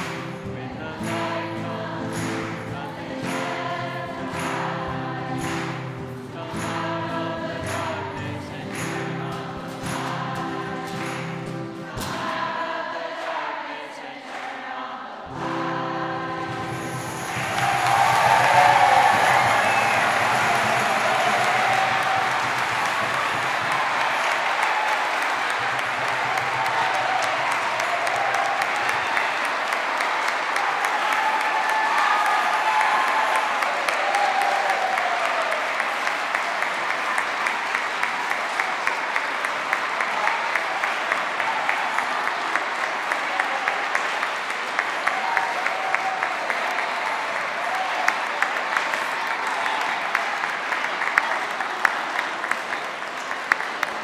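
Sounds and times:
congregation applauding: 0.0 - 54.0.

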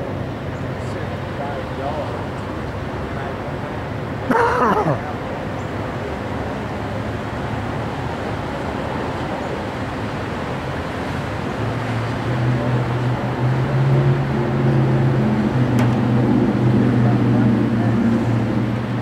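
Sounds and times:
traffic noise: 0.0 - 19.0
vehicle engine hum: 0.0 - 19.0.

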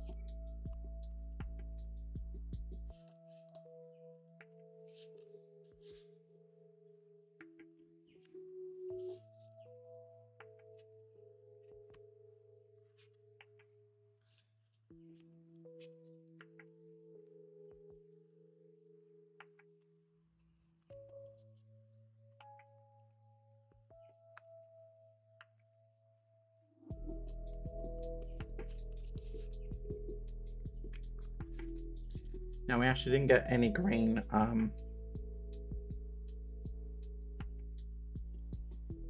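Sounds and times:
soft bell-like background music: 0.0 - 20.0, 20.9 - 39.0.

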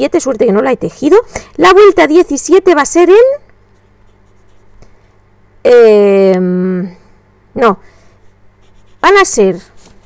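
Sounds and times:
pen scratching on paper: 3.8 - 4.8, 8.2 - 10.0.

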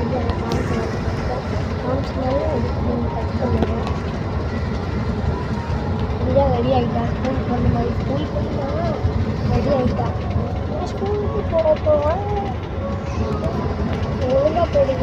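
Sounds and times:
people talking: 0.0 - 4.9, 6.1 - 15.0
bus engine rumble: 0.0 - 15.0.

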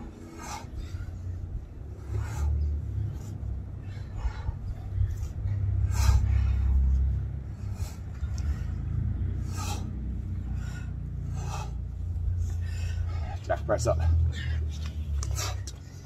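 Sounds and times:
wind buffeting microphone: 0.0 - 13.5.

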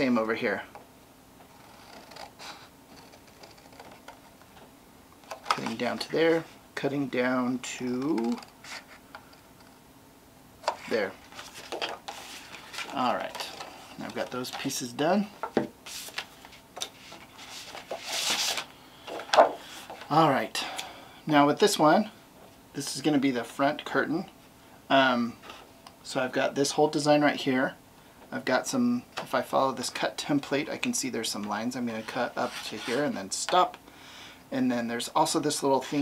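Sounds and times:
paper rustling: 10.6 - 14.9, 15.8 - 20.1.

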